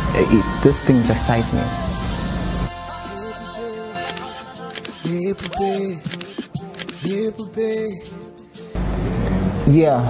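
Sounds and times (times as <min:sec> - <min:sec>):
background music: 0:00.0 - 0:10.0
camera shutter clicks: 0:04.0 - 0:07.2
bending voice-like pitched sound: 0:05.5 - 0:06.0.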